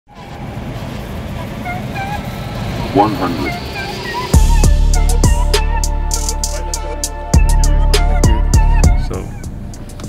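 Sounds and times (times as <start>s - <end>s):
motor vehicle rumble: 0.1s - 10.0s
person speaking a word: 3.0s - 3.6s.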